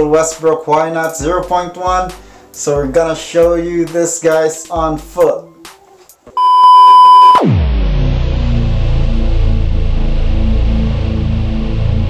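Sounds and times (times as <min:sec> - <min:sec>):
bass-heavy electronic music: 0:01.0 - 0:02.2, 0:07.4 - 0:12.0
electronic beep tone: 0:06.4 - 0:07.6
downward pitch swoop: 0:07.3 - 0:10.2.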